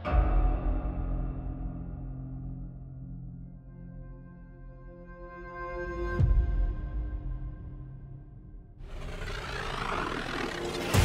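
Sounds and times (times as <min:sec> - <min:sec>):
whooshing riser: 0:08.8 - 0:11.0.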